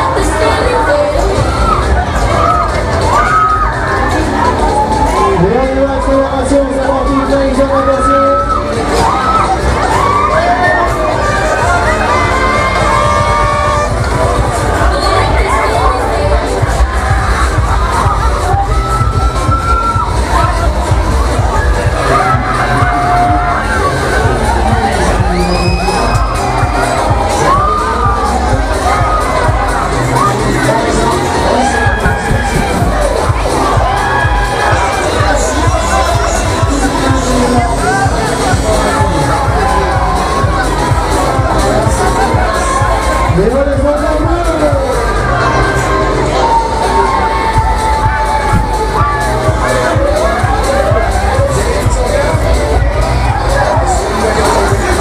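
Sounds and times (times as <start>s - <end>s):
fairground noise: 0.0s - 55.0s.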